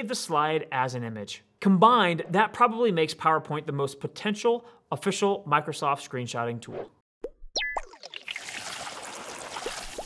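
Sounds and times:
bubbly plops: 7.2s - 10.0s.

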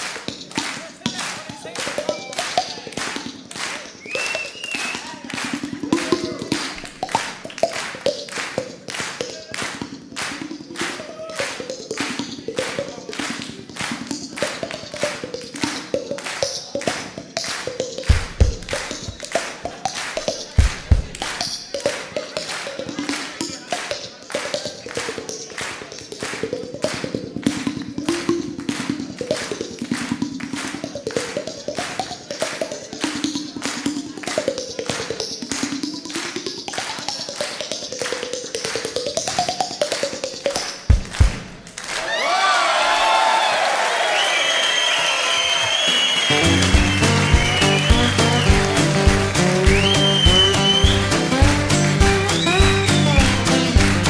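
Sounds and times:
hands tapping cheeks: 0.0s - 41.6s, 46.2s - 54.0s.

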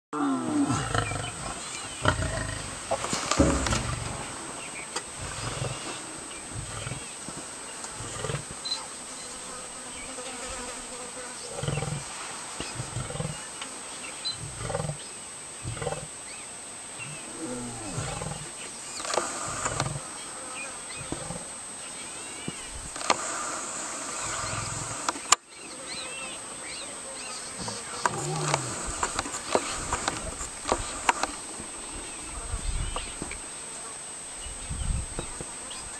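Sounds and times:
lions snarling and growling: 0.2s - 7.2s, 8.0s - 8.8s, 11.5s - 12.0s, 15.6s - 16.1s, 17.0s - 20.1s, 21.0s - 21.5s, 24.1s - 25.1s, 27.6s - 31.4s.

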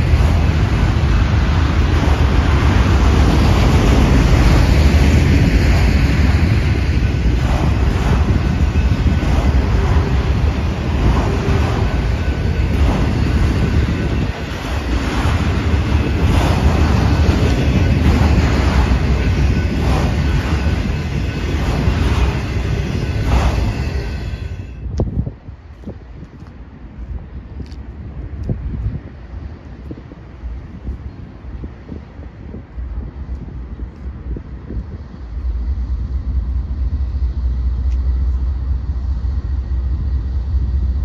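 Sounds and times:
freight train rolling past: 0.0s - 26.2s, 26.9s - 41.0s
wheels clacking on rail: 0.0s - 28.5s.

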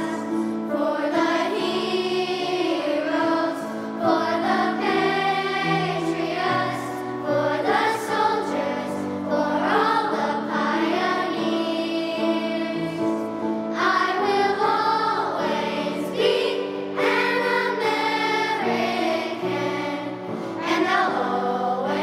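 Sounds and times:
children's choir singing: 0.0s - 22.0s.

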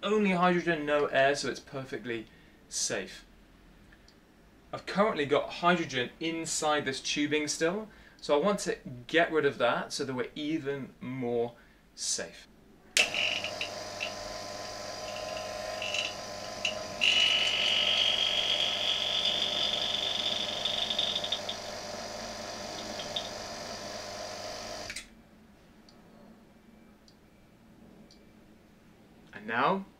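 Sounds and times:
high hissing whine: 13.0s - 25.0s
vacuum pump running: 13.0s - 25.1s.

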